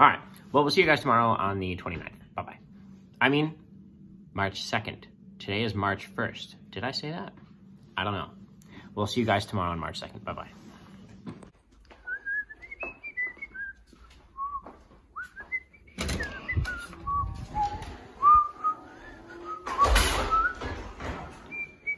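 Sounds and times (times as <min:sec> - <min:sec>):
person whistling a tune: 0:12.0 - 0:20.6.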